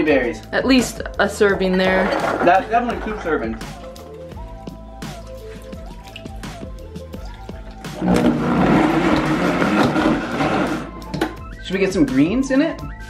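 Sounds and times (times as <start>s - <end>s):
background music: 0.0s - 13.0s
blender running loudly: 8.0s - 11.0s.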